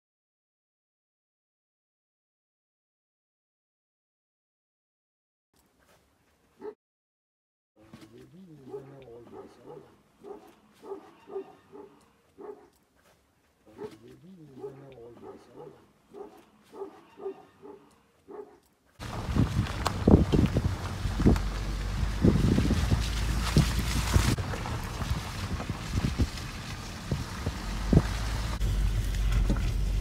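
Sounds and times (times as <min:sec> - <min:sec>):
wind buffeting microphone: 0:19.0 - 0:28.6.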